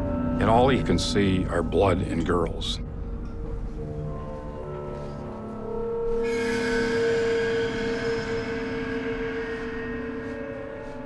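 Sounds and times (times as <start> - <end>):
ominous musical drone: 0.0 - 11.0.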